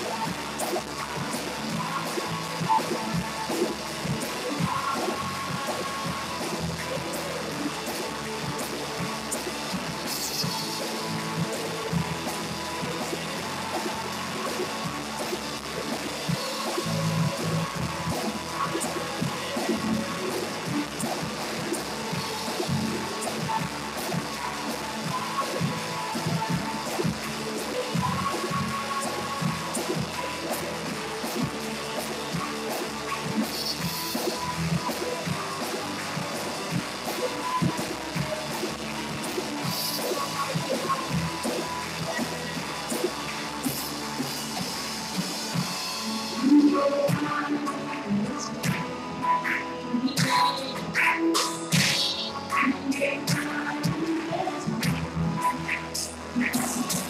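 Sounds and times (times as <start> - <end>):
voices singing: 0.0 - 45.1, 46.0 - 57.0
drum kit beat: 0.0 - 57.0
live worship band music: 0.0 - 57.0.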